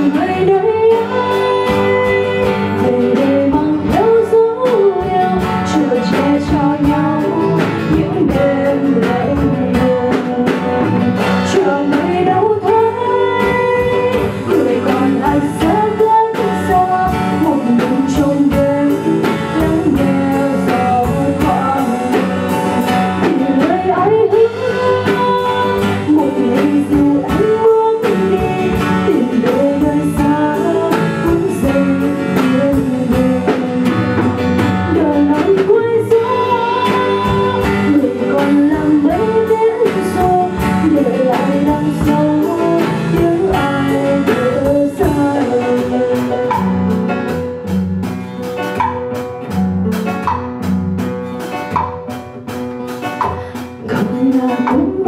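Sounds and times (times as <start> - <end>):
woman singing: 0.0 - 47.8, 52.9 - 55.0
acoustic guitar: 0.0 - 55.0
drums: 0.0 - 55.0.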